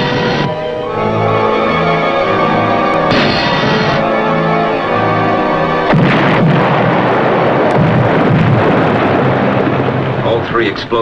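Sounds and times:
dramatic music: 0:00.0 - 0:10.4
loud rumbling explosion: 0:03.1 - 0:04.1, 0:05.8 - 0:11.0.

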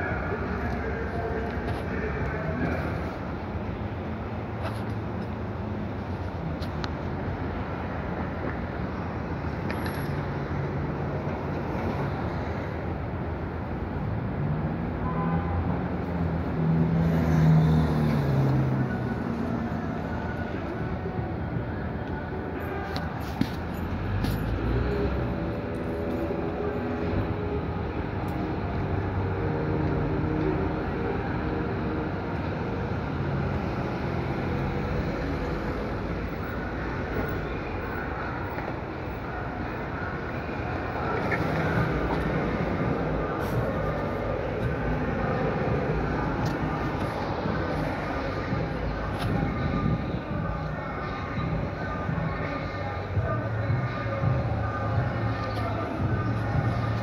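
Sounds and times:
city street traffic: 0:00.0 - 0:57.0.

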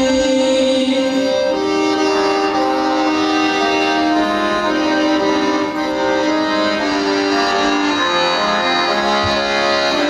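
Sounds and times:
accordion playing held chords: 0:00.0 - 0:10.0.

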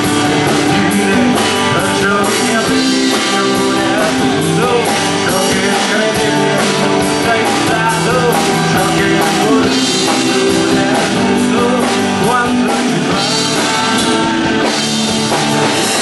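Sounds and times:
drum kit beat: 0:00.0 - 0:16.0
electric guitar strumming: 0:00.0 - 0:16.0
man singing: 0:00.0 - 0:16.0.

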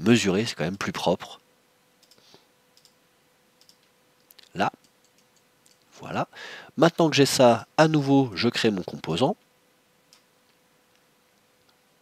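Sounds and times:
faint steady hum: 0:00.0 - 0:12.0
computer mouse clicks: 0:02.0 - 0:03.0, 0:03.6 - 0:05.8.

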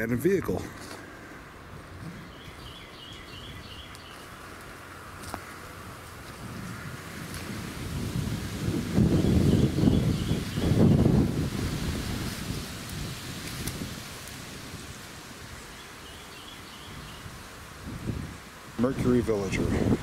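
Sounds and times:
wind buffeting microphone: 0:05.2 - 0:16.0, 0:16.6 - 0:20.0.

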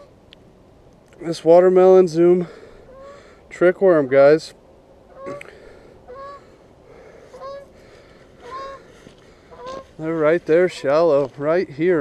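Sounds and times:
geese honking: 0:02.4 - 0:04.4, 0:05.1 - 0:11.9.

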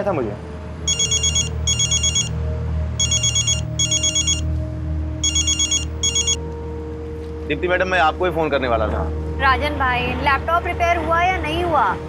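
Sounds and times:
phone ringing with trilling tone: 0:00.9 - 0:02.4, 0:03.0 - 0:04.5, 0:05.2 - 0:06.4.

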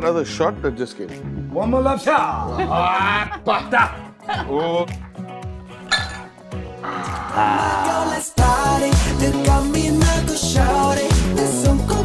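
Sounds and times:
background music with steady beat: 0:00.0 - 0:12.0
shot glasses clinking: 0:05.9 - 0:06.4.

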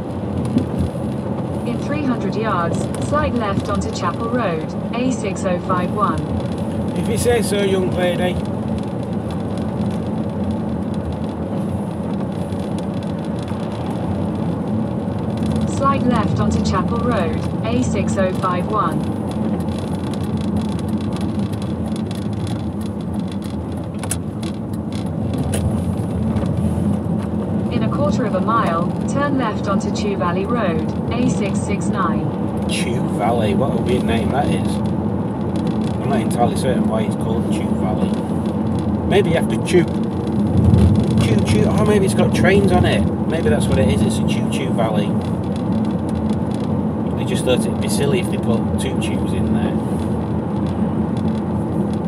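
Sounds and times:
car driving on wet road: 0:00.0 - 0:52.0
wind outside car: 0:00.0 - 0:52.0.

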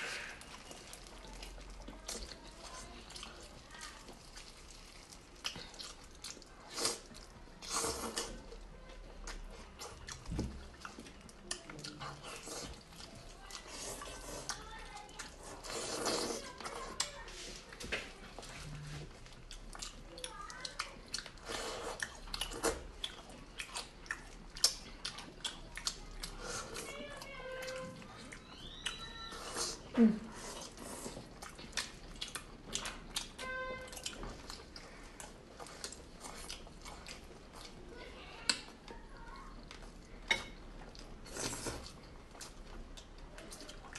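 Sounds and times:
wet chewing and lip smacking: 0:00.0 - 0:17.8, 0:18.5 - 0:43.9.

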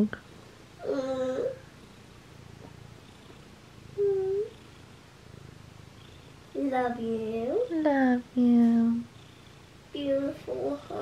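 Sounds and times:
cat purring: 0:00.8 - 0:11.0.

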